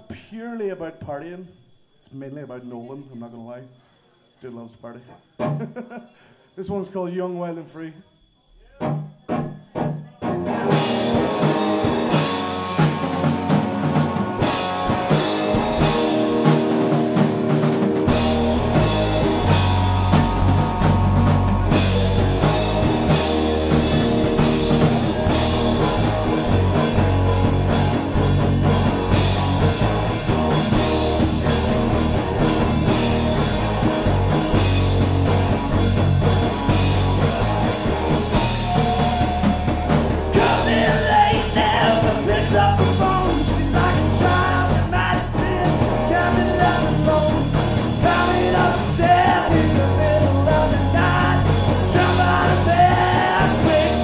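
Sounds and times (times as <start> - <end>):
punk rock band playing live: 9.3 - 54.0
drum hits: 10.8 - 54.0.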